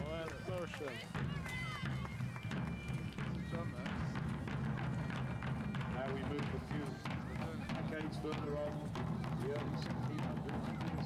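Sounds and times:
field drums beating: 0.0 - 11.0
people talking: 5.9 - 11.0.

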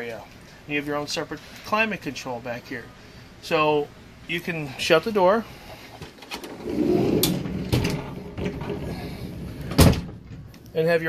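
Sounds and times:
sliding door rolling on track: 6.3 - 9.9.

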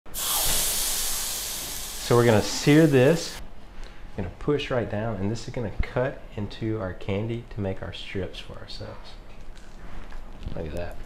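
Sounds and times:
hot spatula searing sugar: 0.1 - 3.4.

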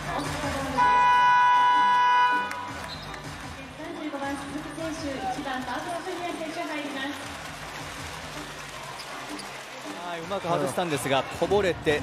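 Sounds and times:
arena buzzer steady tone: 0.8 - 2.7.

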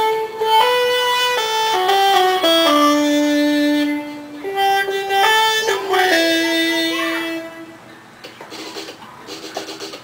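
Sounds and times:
held talkbox synth note: 0.0 - 7.9.

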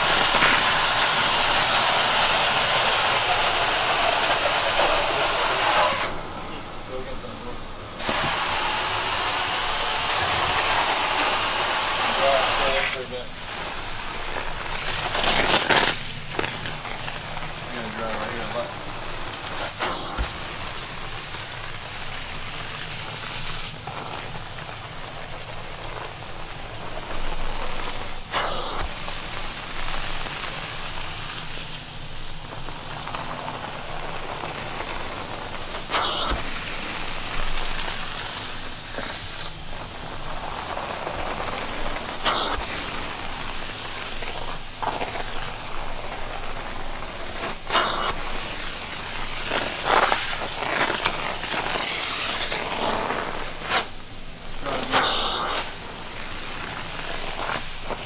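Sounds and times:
carpet extraction wand hissing: 0.0 - 6.3, 8.0 - 58.0
brief louder hiss: 19.5 - 20.6, 28.3 - 29.0, 35.8 - 36.5, 42.1 - 44.9, 47.4 - 48.4, 49.2 - 54.0, 54.6 - 55.9.

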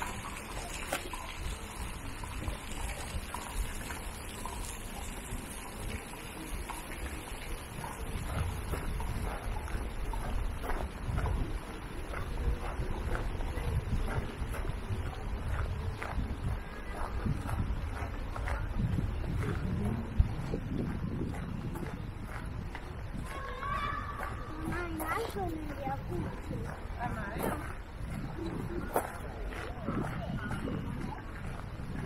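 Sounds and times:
wind rumbling on microphone: 0.0 - 32.0
footsteps on gravel: 8.3 - 32.0.

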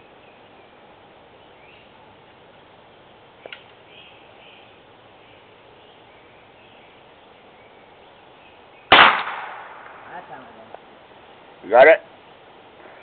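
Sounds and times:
gunshot: 8.9 - 10.1.

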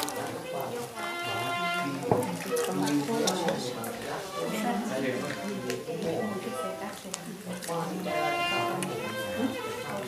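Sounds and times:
music: 0.5 - 10.0
water splashing into plastic basin: 1.9 - 3.8.

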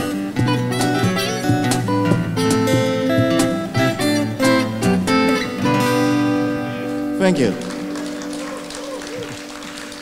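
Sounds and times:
acoustic song: 0.0 - 10.0
audience applause: 7.2 - 10.0.

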